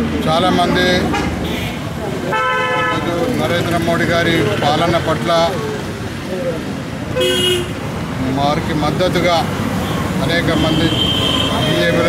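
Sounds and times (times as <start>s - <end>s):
vehicle horn: 1.1s - 3.1s, 7.2s - 7.8s, 10.6s - 12.0s.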